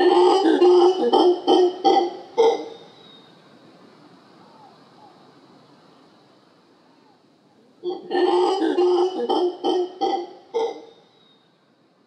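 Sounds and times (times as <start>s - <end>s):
howler monkey calling: 0.0s - 3.4s, 4.4s - 5.3s, 7.8s - 11.4s.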